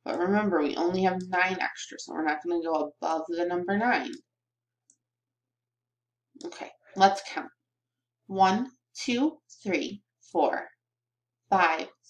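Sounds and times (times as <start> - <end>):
person speaking: 0.0 - 4.2.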